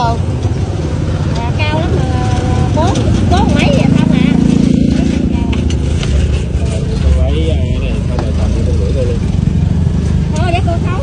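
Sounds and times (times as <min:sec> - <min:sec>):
low traffic rumble: 0:00.0 - 0:11.0
vehicle engine droning: 0:00.0 - 0:11.0.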